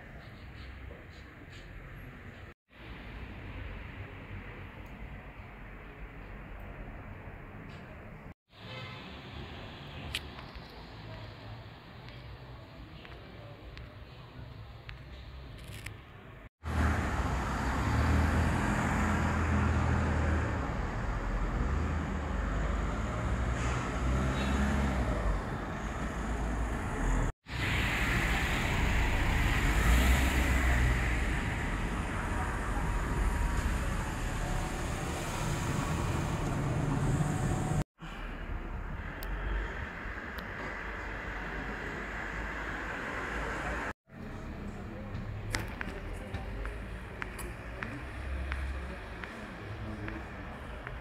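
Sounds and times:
car traffic rumble: 0.1s - 51.0s.

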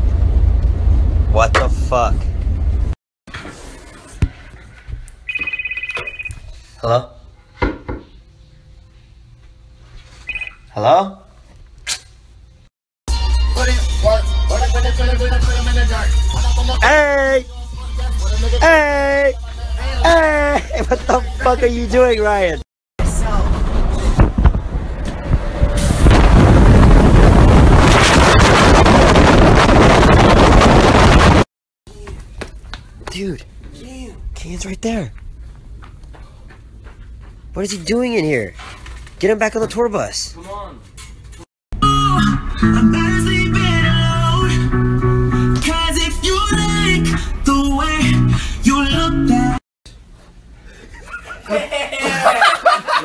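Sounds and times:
telephone ringing: 5.3s - 6.4s
person saying hello: 18.6s - 19.4s
rumbling noise on phone microphone: 23.4s - 31.4s.

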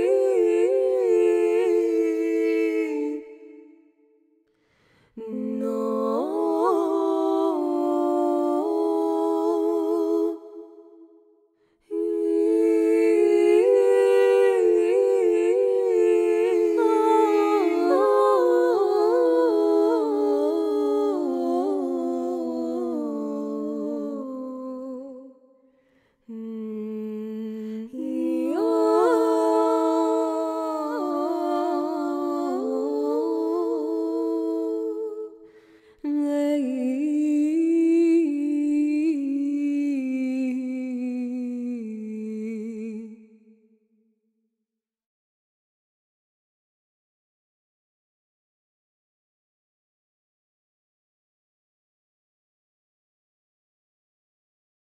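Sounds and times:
person singing wordlessly: 0.0s - 3.6s, 5.2s - 10.7s, 11.9s - 25.2s, 26.3s - 35.3s
a cappella humming voices: 0.0s - 4.0s, 5.1s - 11.1s, 11.8s - 25.4s, 26.2s - 43.4s.

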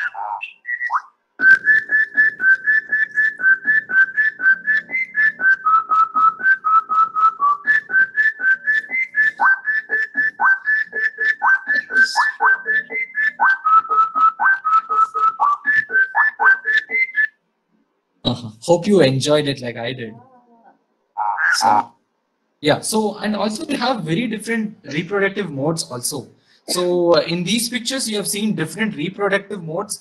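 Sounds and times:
melody of sampled frog calls: 0.0s - 6.6s, 7.6s - 17.4s, 20.2s - 22.0s.

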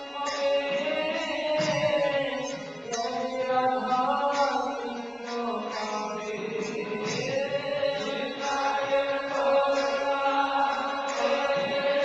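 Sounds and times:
devotional chanting: 0.0s - 12.0s
musical accompaniment: 0.0s - 12.0s.

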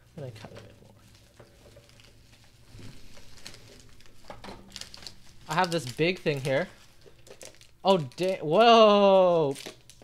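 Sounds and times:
envelope rustling and crinkling: 0.4s - 10.0s.

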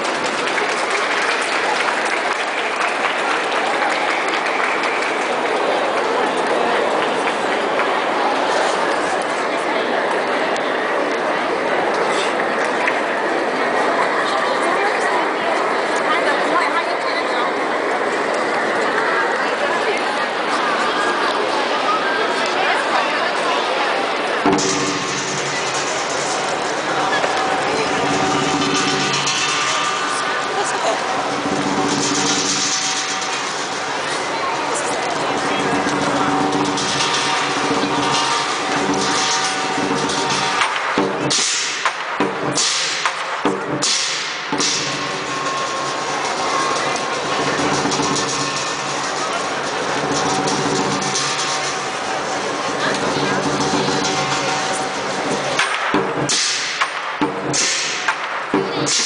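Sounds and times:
crowd chatter: 0.0s - 59.0s
drum cymbals and gong percussion: 24.4s - 59.0s.

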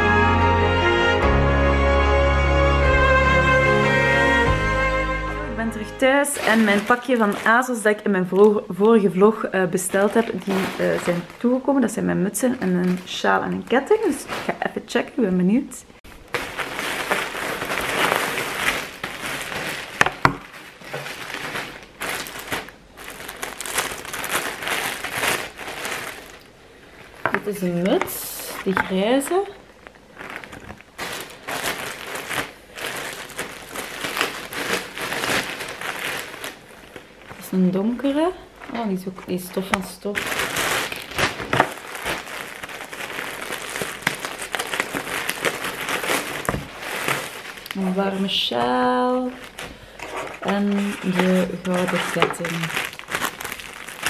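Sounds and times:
plastic packaging crinkling: 5.8s - 15.2s, 16.1s - 54.0s.

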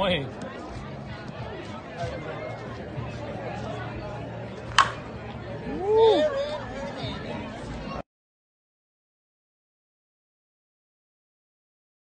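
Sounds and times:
scattered chatter: 0.0s - 8.0s
people shouting and whooping: 5.6s - 7.0s.

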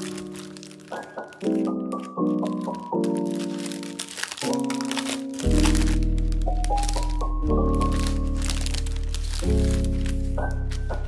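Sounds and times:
plastic packaging crinkling: 0.0s - 11.0s
soft instrumental music: 0.0s - 11.0s.

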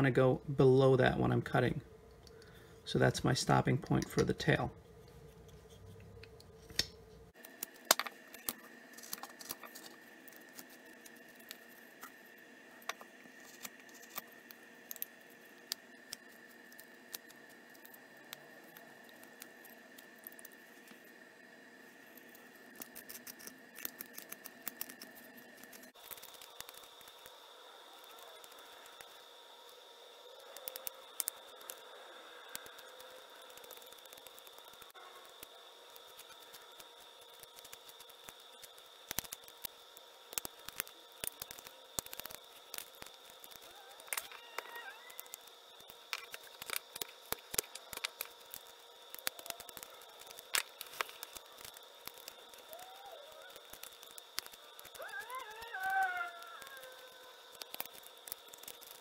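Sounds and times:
faint high tone hum: 0.0s - 59.0s.

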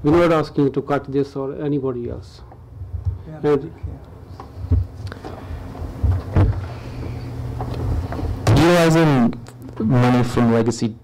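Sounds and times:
low hum on sound system: 0.0s - 11.0s.

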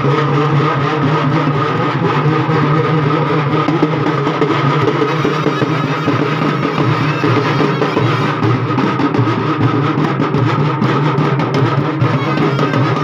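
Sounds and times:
steady drone: 0.0s - 10.8s
barrel drums beating: 0.0s - 13.0s.

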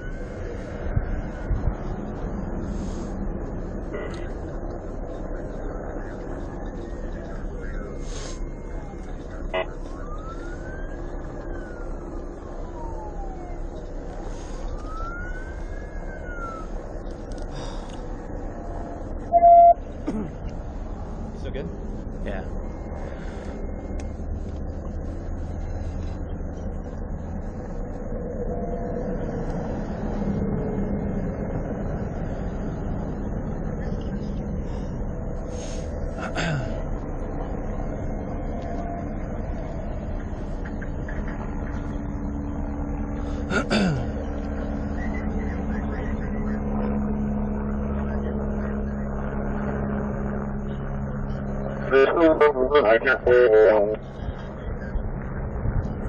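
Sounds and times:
faint indistinct voices: 45.2s - 55.5s.

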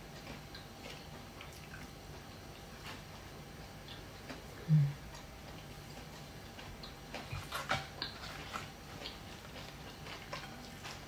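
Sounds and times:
chewing with mouth clicks: 0.0s - 11.0s.

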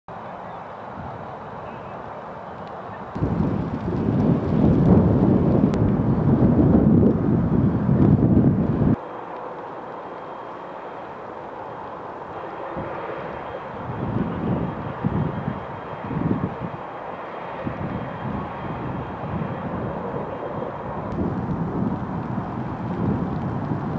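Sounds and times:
wind buffeting microphone: 0.5s - 9.0s, 11.6s - 23.9s.

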